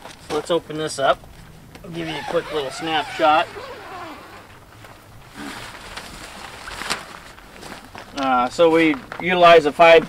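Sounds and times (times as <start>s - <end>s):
tent zipper unzipping: 1.9s - 4.7s, 5.3s - 6.4s.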